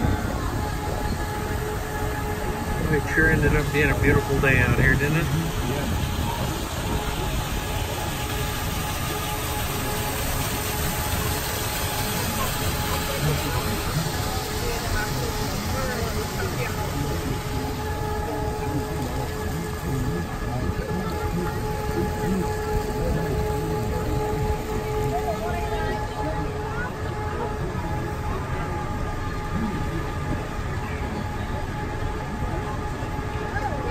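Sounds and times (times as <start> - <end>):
indistinct voices: 0.0 - 33.9
monorail train rumble and whine: 0.0 - 33.9.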